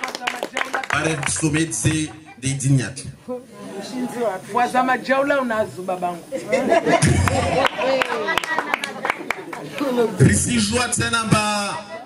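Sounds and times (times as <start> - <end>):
man talking into a microphone: 0.9 - 3.2, 10.2 - 12.0.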